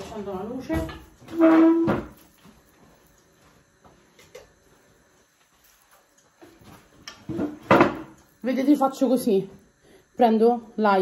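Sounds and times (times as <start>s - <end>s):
household knocks and clatter: 0.0s - 2.6s, 6.4s - 8.2s.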